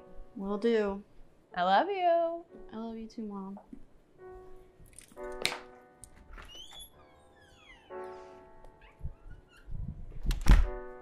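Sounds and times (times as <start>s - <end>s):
slow piano music: 0.0s - 1.4s, 2.3s - 11.0s.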